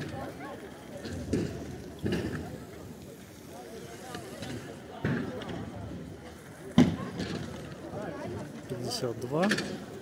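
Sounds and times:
people talking: 0.0 - 9.9.

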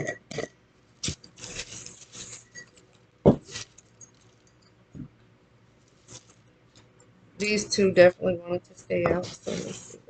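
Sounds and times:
paper slips rustling and spilling: 1.0 - 2.6.

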